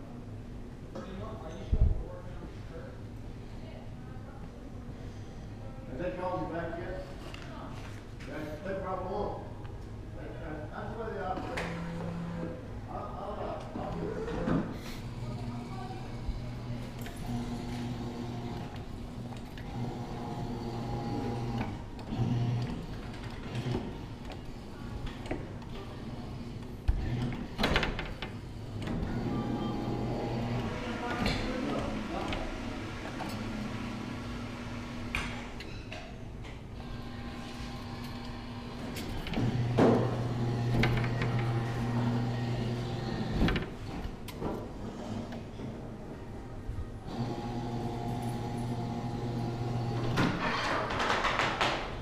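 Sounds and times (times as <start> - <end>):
arcade background noise: 0.0 - 52.0
claw machine motors humming: 11.2 - 12.8, 13.5 - 35.7, 36.4 - 45.7, 47.0 - 50.4.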